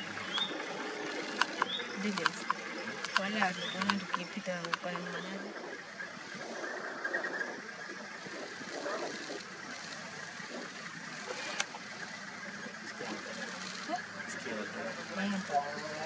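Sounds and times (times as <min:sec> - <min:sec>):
steady hum: 0:00.0 - 0:16.0
people talking indistinctly: 0:01.4 - 0:06.7, 0:07.9 - 0:16.0.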